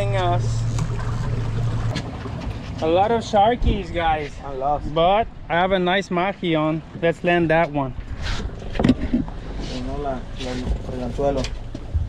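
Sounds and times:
water rushing: 0:00.0 - 0:07.5
boat engine humming: 0:00.0 - 0:12.0.

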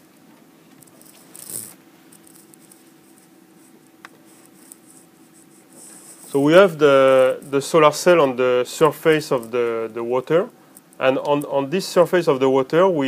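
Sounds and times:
faint steady hum: 0:00.0 - 0:13.0
soft rustle: 0:00.2 - 0:08.2.

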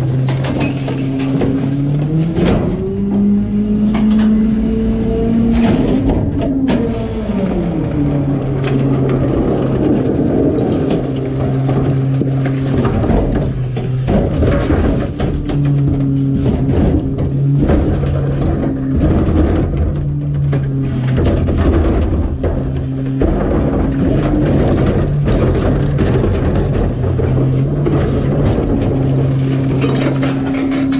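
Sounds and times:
garbage truck engine and hydraulics: 0:00.0 - 0:30.9
plastic cart clanking and rattling: 0:08.6 - 0:30.9.

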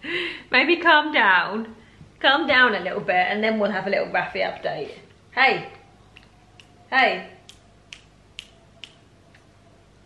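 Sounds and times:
faint kissing smacks: 0:07.4 - 0:09.5.

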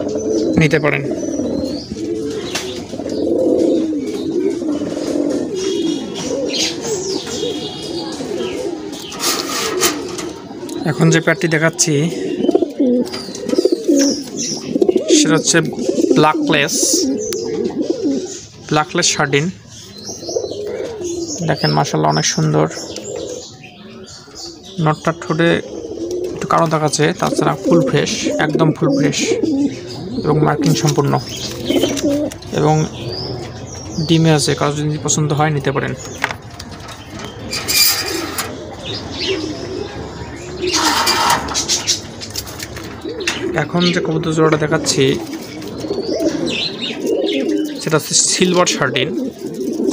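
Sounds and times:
pigeons cooing: 0:00.0 - 0:49.9.

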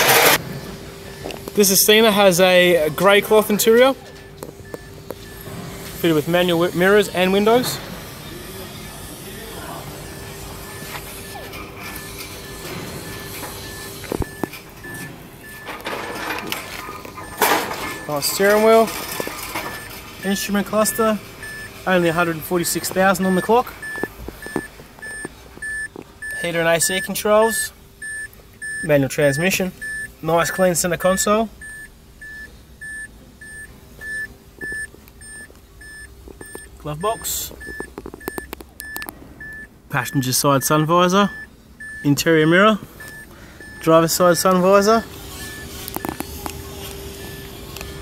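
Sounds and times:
steady low hum: 0:00.0 - 0:48.0
short electronic beeps: 0:10.1 - 0:16.3, 0:17.2 - 0:27.2, 0:28.0 - 0:42.2, 0:43.0 - 0:46.2.

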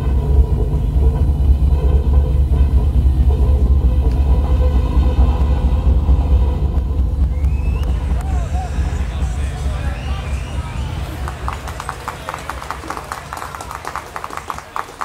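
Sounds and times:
faint music: 0:00.0 - 0:15.0.

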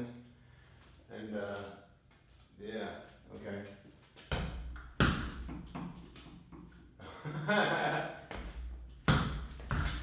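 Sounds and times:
punches hitting punching bag: 0:04.3 - 0:05.8, 0:09.0 - 0:10.0.

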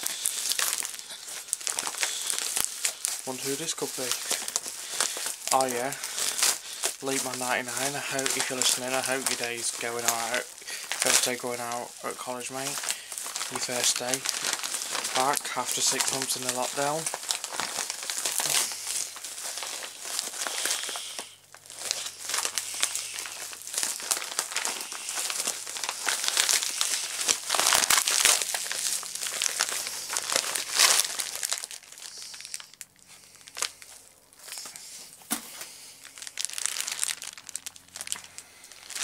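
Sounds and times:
packaging tearing: 0:00.0 - 0:39.0
plastic packaging crinkling: 0:00.0 - 0:39.0.

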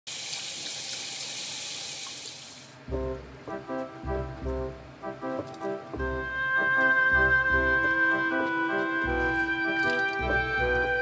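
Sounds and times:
music with deep bass: 0:02.9 - 0:11.0.

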